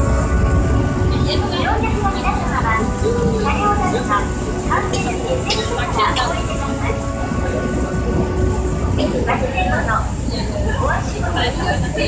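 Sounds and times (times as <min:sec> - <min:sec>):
ferry engine rumbling: 0:00.0 - 0:12.0.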